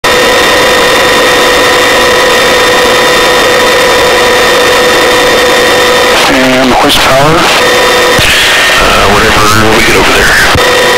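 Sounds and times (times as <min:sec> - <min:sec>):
helicopter engine whine: 0:00.0 - 0:10.9
helicopter rotor and engine noise: 0:00.0 - 0:10.9.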